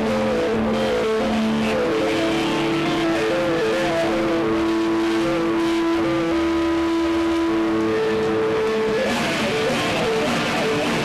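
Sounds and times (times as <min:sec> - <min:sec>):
distorted electric guitar: 0:00.0 - 0:11.0.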